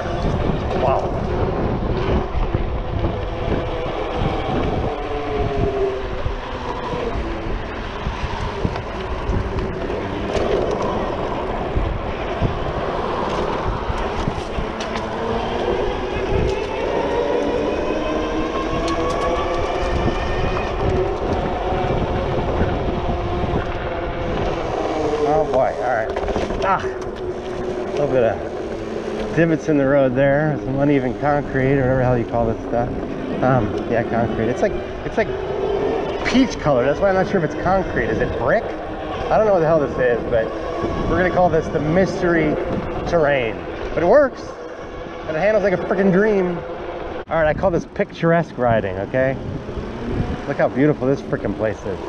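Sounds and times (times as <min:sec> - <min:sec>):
electric bike motor whining: 0:00.0 - 0:52.0
wind rumble on microphone: 0:00.0 - 0:52.0.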